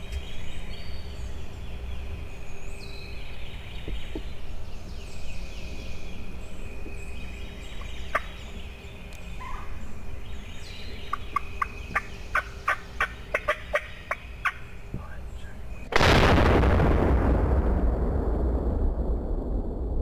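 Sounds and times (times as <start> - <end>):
turkey putting: 11.1 - 15.6.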